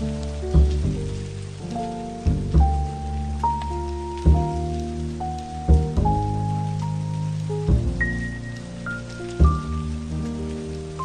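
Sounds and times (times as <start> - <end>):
slow soft jazz music: 0.0 - 11.0
steady rain: 0.0 - 11.0.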